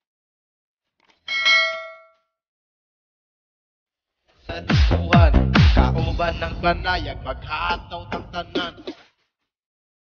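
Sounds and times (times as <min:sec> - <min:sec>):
bell ding: 0:01.3 - 0:02.2.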